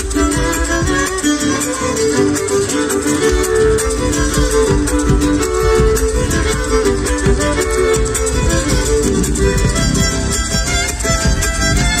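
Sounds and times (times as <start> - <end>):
drums: 0.0 - 12.0
guitar: 0.0 - 12.0
violin: 0.0 - 12.0.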